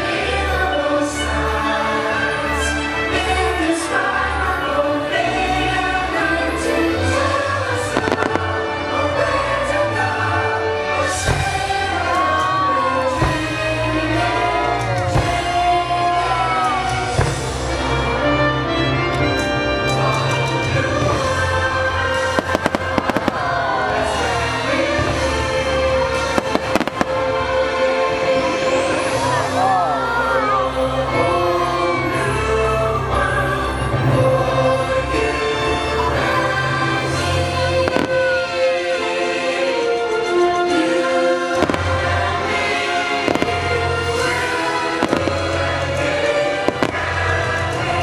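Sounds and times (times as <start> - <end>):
music with singing: 0.0 - 48.0
fireworks bangs and crackles: 7.3 - 10.0, 11.0 - 18.1, 20.3 - 29.4, 37.0 - 39.2, 41.4 - 48.0
firework bangs: 7.8 - 8.7, 22.1 - 25.4, 26.0 - 27.6, 37.7 - 38.7, 41.5 - 48.0.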